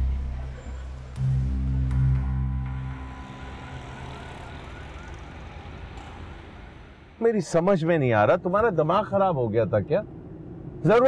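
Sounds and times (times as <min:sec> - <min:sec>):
city road traffic rumble: 0:00.0 - 0:11.0.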